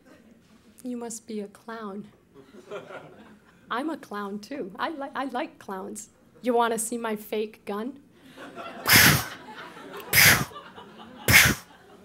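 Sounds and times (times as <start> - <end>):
woman imitating gunshots with mouth: 8.9 - 9.4, 10.1 - 10.5, 11.3 - 11.6.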